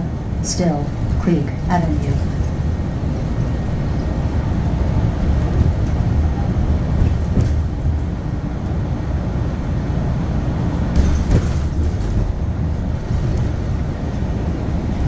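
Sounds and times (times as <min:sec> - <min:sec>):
bus cabin rumble: 0:00.0 - 0:15.0.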